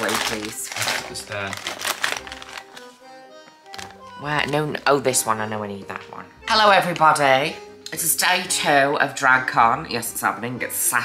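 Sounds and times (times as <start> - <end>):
packaging crinkling and clicking: 0.0 - 3.0, 3.6 - 4.0
background music: 0.0 - 11.0.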